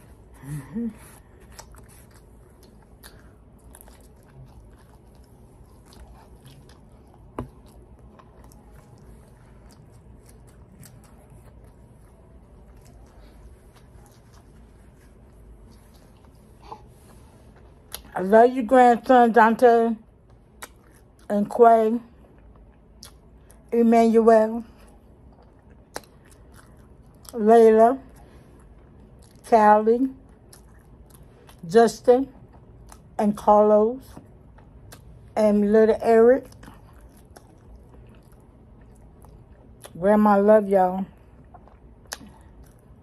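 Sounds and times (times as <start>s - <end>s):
person chewing bread: 0.0s - 18.2s, 20.1s - 21.3s, 22.1s - 23.7s, 24.7s - 27.4s, 28.0s - 29.5s, 30.2s - 31.7s, 32.3s - 33.2s, 34.0s - 35.4s, 36.4s - 40.0s, 41.1s - 43.0s
wet mouth clicks and smacks: 20.3s - 21.2s, 41.4s - 42.8s.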